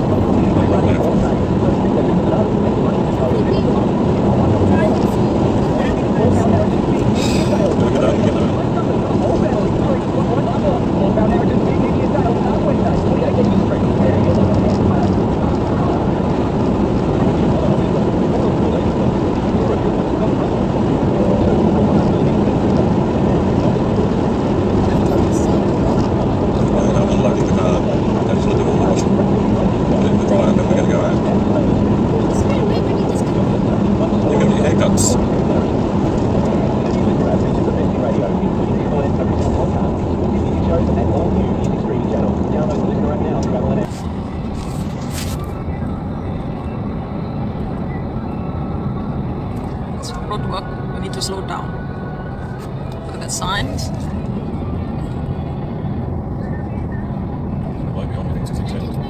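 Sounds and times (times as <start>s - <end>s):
car engine hum: 0.0s - 59.0s.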